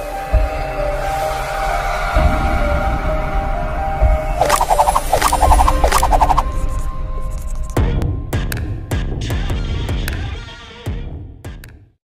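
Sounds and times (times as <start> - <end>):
whoosh: 4.2 - 7.6.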